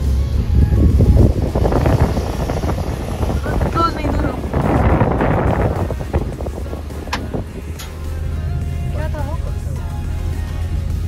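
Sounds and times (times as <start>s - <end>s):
wind noise: 0.0s - 7.8s
car engine and road rumble: 0.0s - 11.0s.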